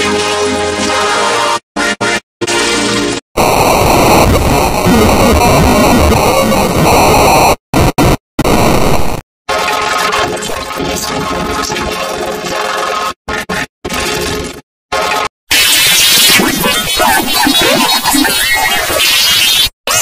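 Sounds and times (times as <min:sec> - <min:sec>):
harsh distorted noise: 0:02.4 - 0:12.1, 0:13.3 - 0:20.0.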